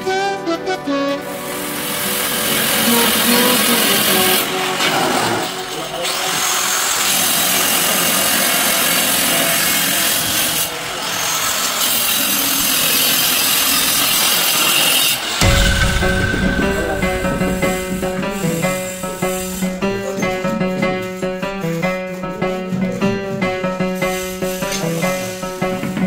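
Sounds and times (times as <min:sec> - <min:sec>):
electric cutter grinding tile: 0:01.2 - 0:15.4.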